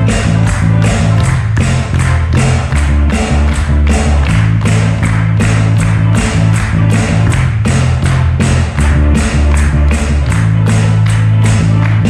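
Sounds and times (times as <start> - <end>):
drum kit beat: 0.0 - 12.0
electric bass: 0.0 - 12.0.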